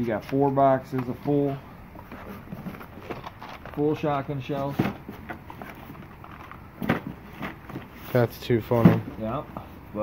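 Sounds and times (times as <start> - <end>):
cardboard boxes rustling and tapping: 0.1 - 9.4.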